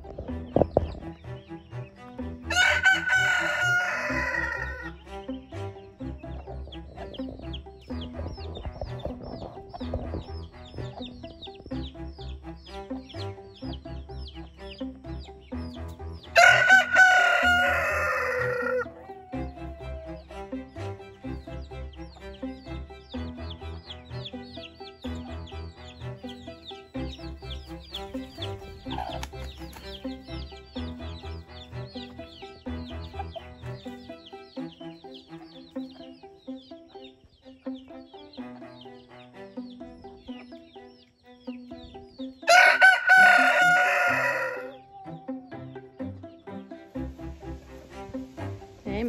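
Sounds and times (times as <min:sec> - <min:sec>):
background music with repeating beat: 0:00.0 - 0:49.0
rooster crowing: 0:02.5 - 0:04.9, 0:16.4 - 0:20.4, 0:42.5 - 0:45.5.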